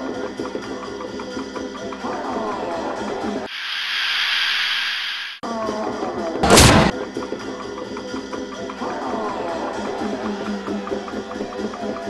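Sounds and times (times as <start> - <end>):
hissing whoosh: 3.5 - 5.4
boom-like crash: 6.4 - 6.9.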